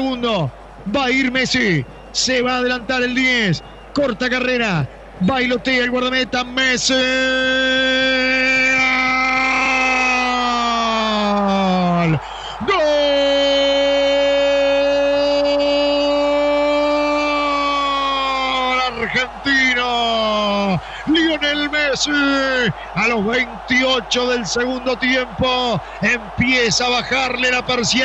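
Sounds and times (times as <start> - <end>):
man giving long goal cry: 6.9 - 28.0.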